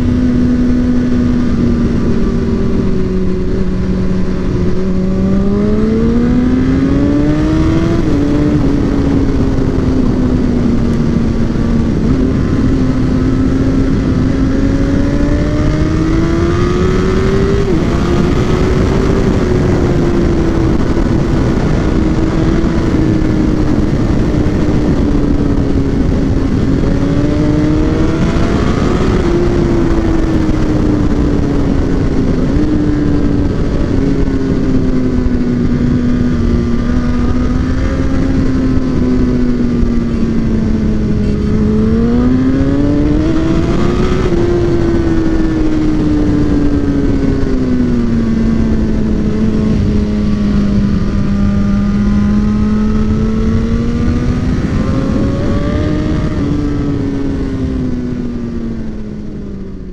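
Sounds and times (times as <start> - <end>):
heavy wind noise: 0.0 - 59.9
motorcycle engine revving: 0.0 - 59.9.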